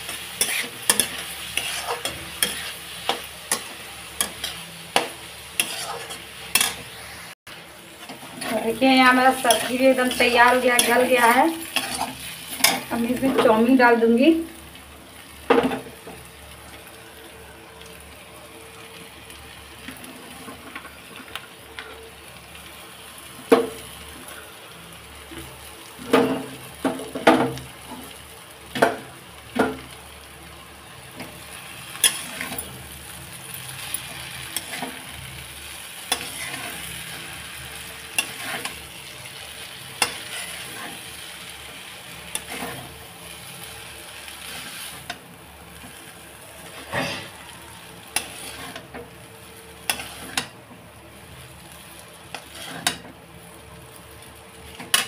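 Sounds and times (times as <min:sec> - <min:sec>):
low sizzle: 0:00.0 - 0:55.0
spatula scraping and knocking pan: 0:00.1 - 0:06.8.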